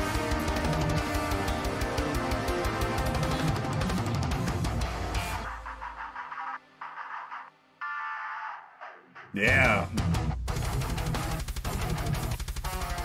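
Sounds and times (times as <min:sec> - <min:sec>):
distorted electric guitars: 0:00.0 - 0:06.1, 0:07.1 - 0:13.0
rapid drumming: 0:09.3 - 0:13.0.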